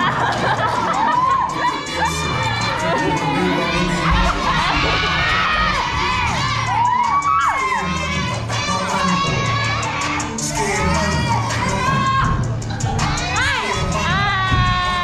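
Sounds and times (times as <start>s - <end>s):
children shouting and cheering: 0.0s - 15.0s
dance music with bass beat: 0.0s - 15.0s.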